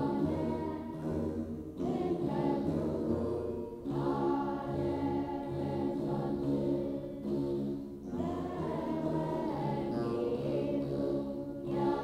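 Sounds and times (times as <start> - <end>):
choir singing in unison: 0.0 - 12.0.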